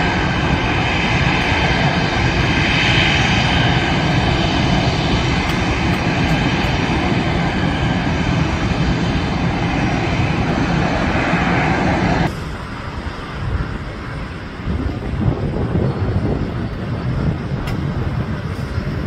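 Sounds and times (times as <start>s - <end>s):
jet engines whining: 0.0s - 19.0s.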